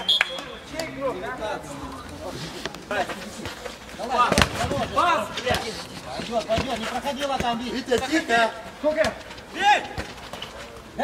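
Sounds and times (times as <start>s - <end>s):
football kick thud: 4.3s - 5.6s.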